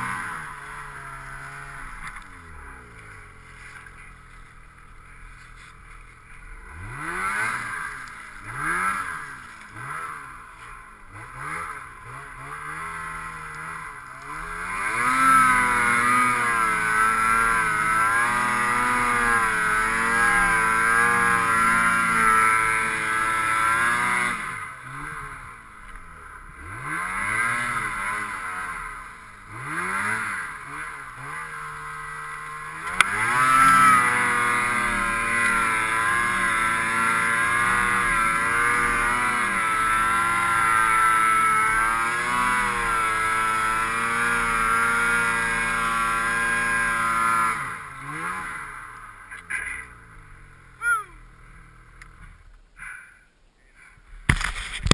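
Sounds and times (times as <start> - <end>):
snowmobile engine revving: 0.0 - 54.9.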